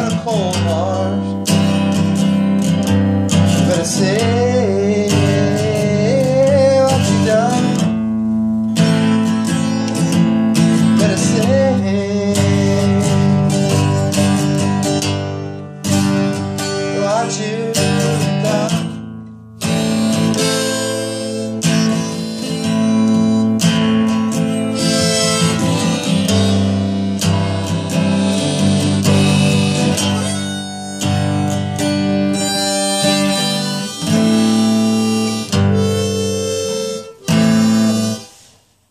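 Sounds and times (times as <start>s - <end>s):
acoustic guitar strumming: 0.0s - 38.8s
harmonica lead: 0.0s - 38.8s.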